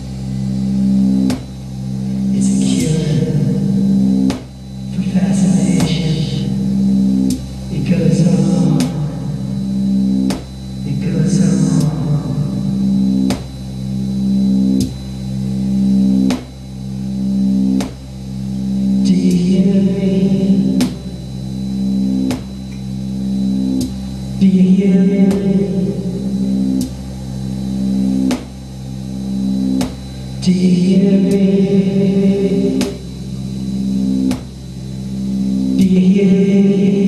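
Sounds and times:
sharp electronic beat: 0.0 - 36.1
synthesizer droning chords: 0.0 - 37.0.

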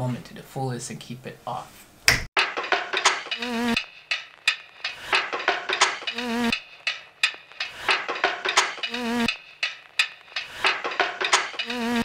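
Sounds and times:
glitchy clicks and ticks: 2.9 - 12.0
wobbling electronic buzz: 3.3 - 3.9, 6.0 - 6.6.

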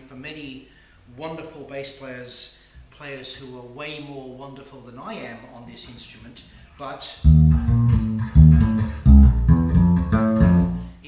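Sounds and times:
electric bass plucked: 7.2 - 11.0.

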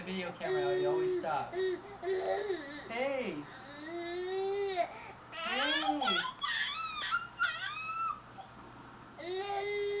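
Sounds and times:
baby squealing: 5.4 - 8.5.

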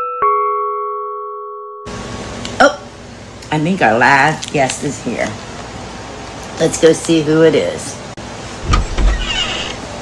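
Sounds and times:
two-note doorbell chime: 0.0 - 1.9.

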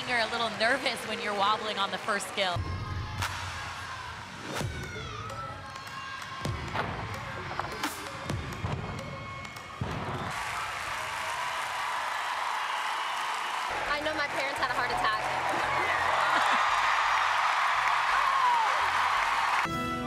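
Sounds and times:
crowd cheering and applauding: 0.0 - 20.0.

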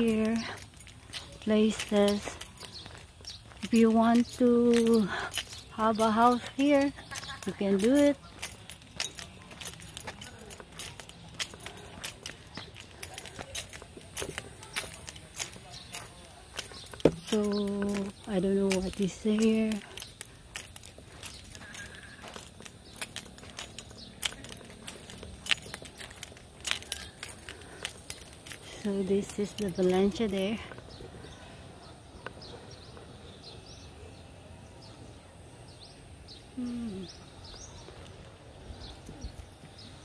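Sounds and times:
footsteps on concrete: 0.0 - 33.3
light clicks and clinks: 0.0 - 33.8
faint outdoor background: 0.0 - 40.0.

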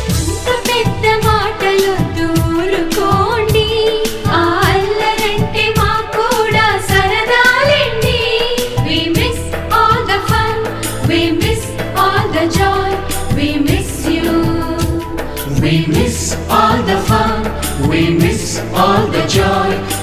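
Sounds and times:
steady percussion beat: 0.0 - 20.0
person singing: 14.1 - 20.0.

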